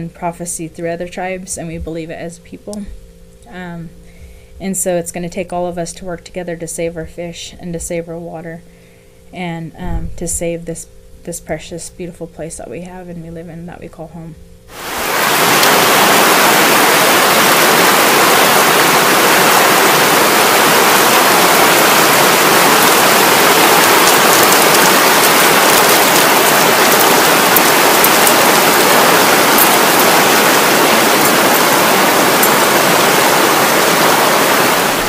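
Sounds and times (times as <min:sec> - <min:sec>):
river rushing over gravel: 0:14.7 - 0:35.0.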